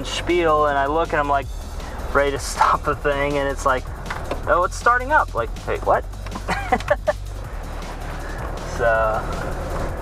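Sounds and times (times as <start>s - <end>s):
car engine and tyres drone: 0.0s - 10.0s.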